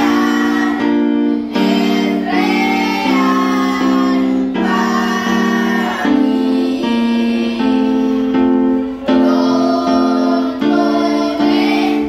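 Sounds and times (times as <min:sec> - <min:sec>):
children singing: 0:00.0 - 0:12.0
keyboard accompaniment: 0:00.0 - 0:12.0.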